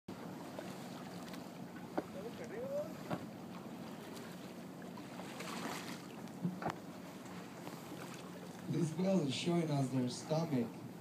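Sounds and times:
boat engine humming: 0.1s - 11.0s
water noise: 0.1s - 11.0s
wind: 0.1s - 11.0s.

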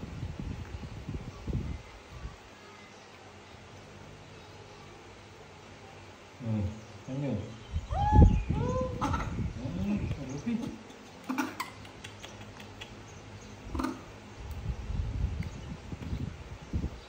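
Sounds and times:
sharp clicks: 10.8s - 13.0s.

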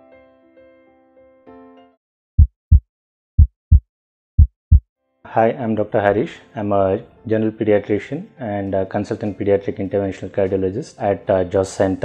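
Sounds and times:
heartbeat thuds: 2.4s - 2.8s, 3.4s - 3.8s, 4.4s - 4.8s
soft music: 5.0s - 12.0s.

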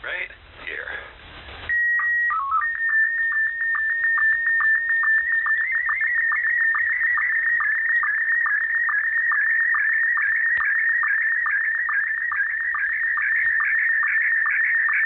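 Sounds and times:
low sync blips: 1.6s - 15.0s
sstv signal tones: 1.7s - 15.0s.

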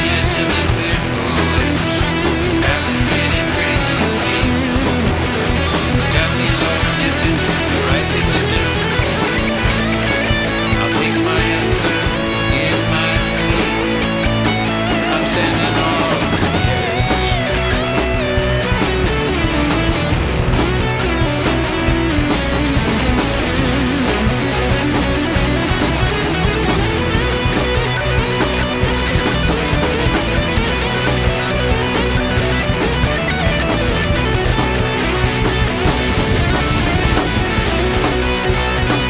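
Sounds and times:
bass: 0.0s - 39.0s
drums with steady beat: 0.0s - 39.0s
guitar lines: 0.0s - 39.0s.

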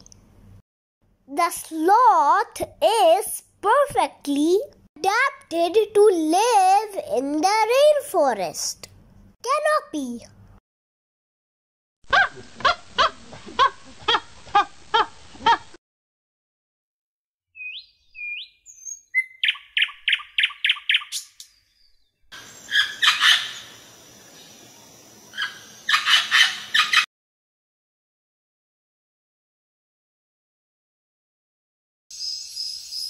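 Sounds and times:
rising bird chirps: 17.5s - 27.0s, 32.1s - 33.0s
chorus of animal calls: 22.6s - 23.8s, 25.3s - 27.0s
repeated animal call: 22.7s - 23.7s, 25.4s - 27.0s.

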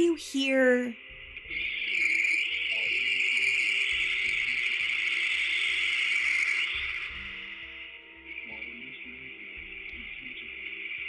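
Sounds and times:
high-pitched static hiss: 1.0s - 11.0s.

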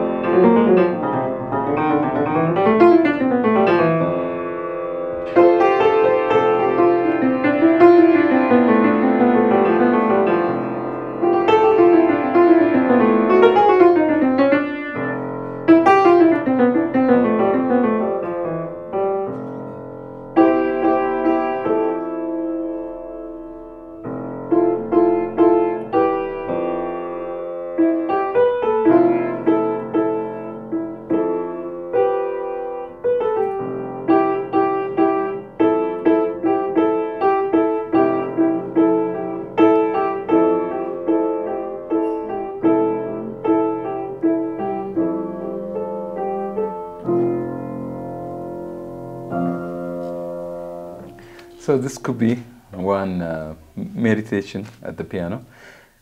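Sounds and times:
solo piano piece: 0.0s - 56.0s.

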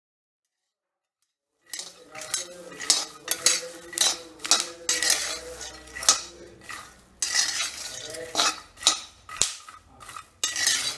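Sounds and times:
metal spatula scraping pan: 1.6s - 10.9s
nuts rattling in pan: 1.6s - 10.9s.

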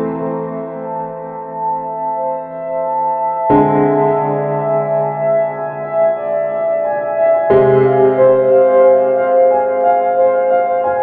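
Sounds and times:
keyboard chord with slow melody: 0.0s - 11.0s.

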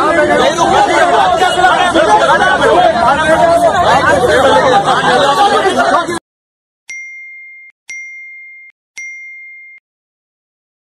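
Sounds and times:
electronic chime dings: 6.9s - 9.8s.

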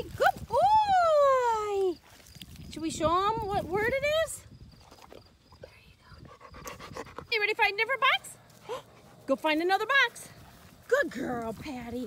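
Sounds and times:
dog panting: 6.2s - 7.4s, 8.5s - 9.4s.

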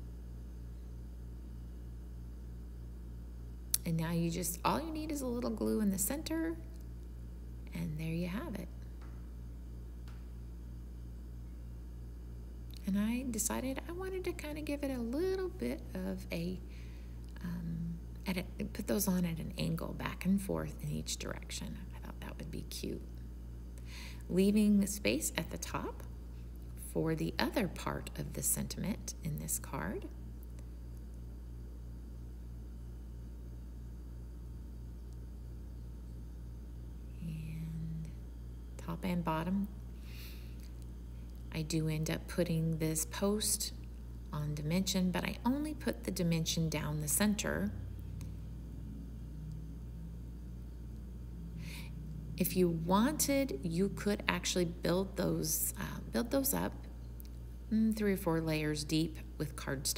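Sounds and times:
low pulsing hum: 0.0s - 59.9s
woman humming: 37.1s - 38.3s.

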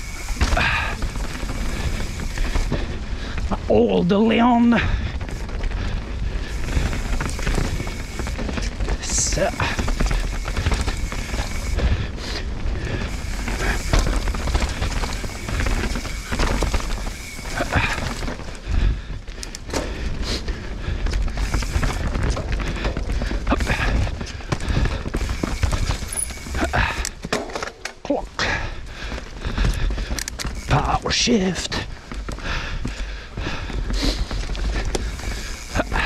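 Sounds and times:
bike chain and frame rattling: 0.0s - 36.0s
tyres rolling over dirt: 0.0s - 36.0s.

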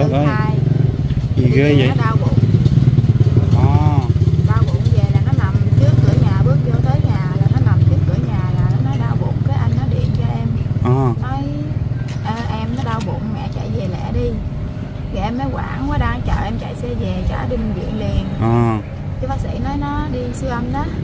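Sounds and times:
woman talking: 0.0s - 0.7s, 1.8s - 2.4s, 4.4s - 14.5s, 15.1s - 18.4s, 19.2s - 21.0s
low engine drone: 6.6s - 21.0s.

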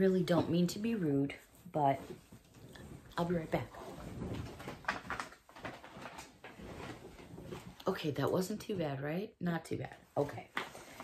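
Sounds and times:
knocks and rustling: 2.1s - 7.8s.

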